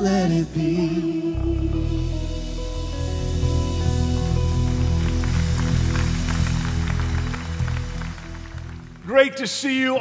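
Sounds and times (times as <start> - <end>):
deep sustained bass: 0.0 - 9.0
worship band music: 0.0 - 10.0.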